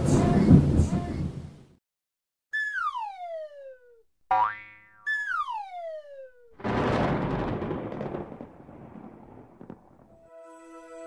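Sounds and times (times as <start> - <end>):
falling whistle glide: 2.6 - 3.9, 5.1 - 6.5.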